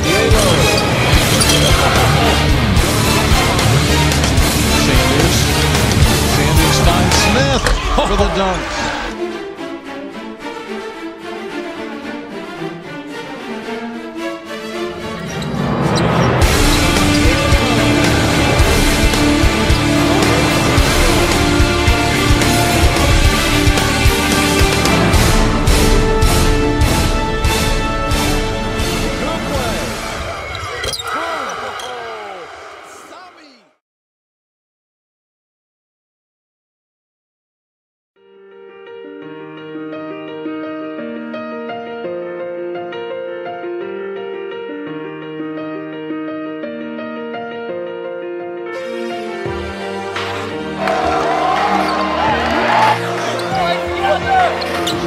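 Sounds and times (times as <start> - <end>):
background music: 0.0 - 33.7, 38.2 - 55.0
sneaker squeaks on hardwood court: 1.3 - 2.0, 30.4 - 32.0, 54.6 - 55.0
shouting voices: 6.2 - 9.2, 29.3 - 33.8, 50.7 - 55.0.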